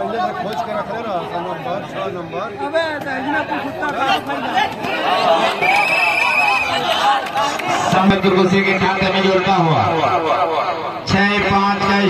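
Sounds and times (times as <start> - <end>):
crowd chatter and shouts: 0.0 - 12.0.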